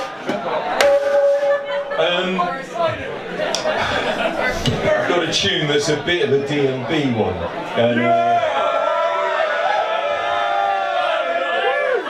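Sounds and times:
background chatter: 0.0s - 9.0s
drum strike with pitched ring: 0.7s - 2.3s.

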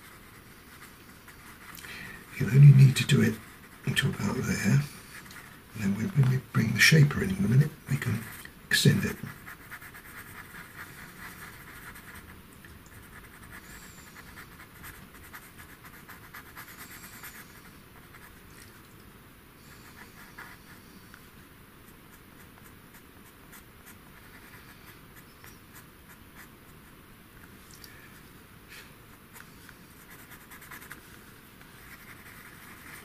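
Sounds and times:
pencil scratching on paper: 0.0s - 6.4s, 7.2s - 12.3s, 13.0s - 18.4s, 19.7s - 20.9s, 22.1s - 27.0s, 29.1s - 31.1s, 31.7s - 33.0s.

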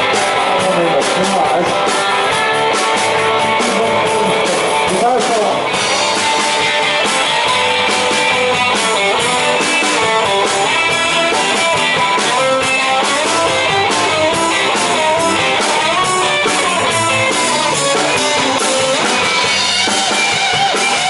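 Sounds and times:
drum kit beat: 0.0s - 21.0s
electric bass: 0.0s - 21.0s
electric guitar: 0.0s - 21.0s.

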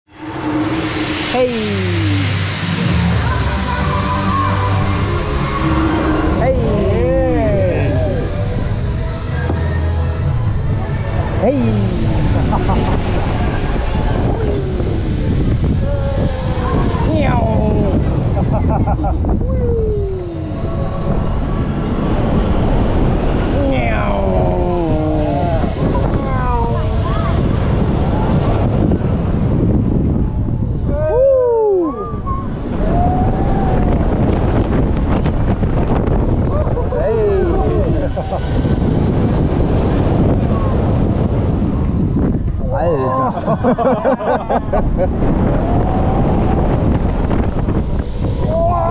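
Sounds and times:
wind rushing over microphone: 0.0s - 48.9s
rising and falling cries: 0.1s - 25.9s, 48.4s - 48.9s
riders yelling and whooping: 30.7s - 34.6s, 36.2s - 38.8s, 42.9s - 48.9s.

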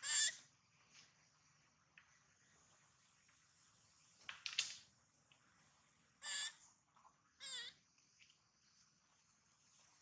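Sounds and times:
macaque calls: 0.0s - 0.4s, 6.2s - 6.6s.

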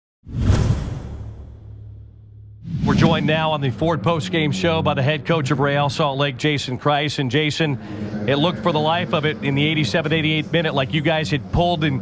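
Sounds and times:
whoosh sound effect: 0.3s - 3.4s
low steady drone: 7.2s - 12.0s.

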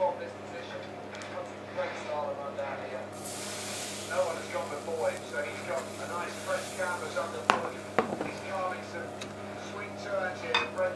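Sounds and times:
sports commentary on television: 0.0s - 10.9s
steady low hum: 0.0s - 10.9s
frying pan knocking on hob: 7.5s - 8.6s.

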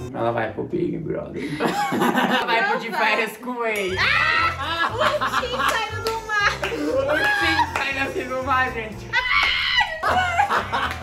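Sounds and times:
people laughing: 1.4s - 8.4s, 9.2s - 11.0s.

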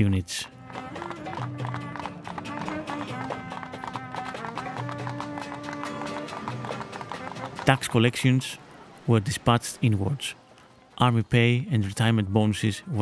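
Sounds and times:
music with held notes: 0.5s - 7.9s
clicking percussion beat: 0.5s - 8.0s.

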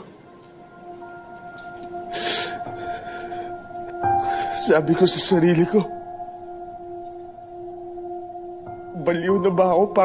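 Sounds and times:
steady held music tone: 0.0s - 10.0s.

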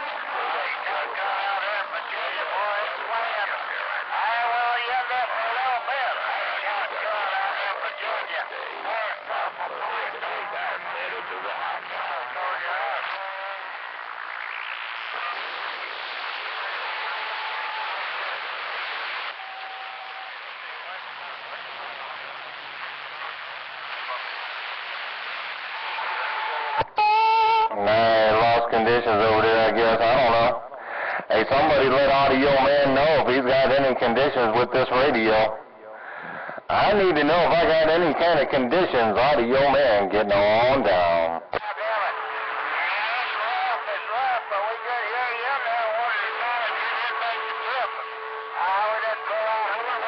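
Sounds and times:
man's voice over radio: 0.0s - 18.4s, 19.6s - 23.3s, 26.4s - 50.0s
radio static hiss: 0.0s - 50.0s
whistling radio tones: 0.0s - 50.0s.

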